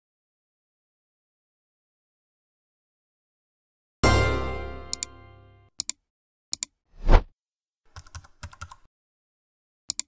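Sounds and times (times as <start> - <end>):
mouse clicks: 5.8 - 6.8
keyboard typing: 7.9 - 8.9.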